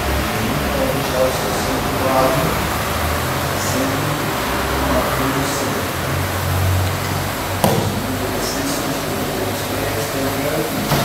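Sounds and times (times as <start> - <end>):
electric fans whirring: 0.0 - 11.0
sharp slap: 7.6 - 8.1.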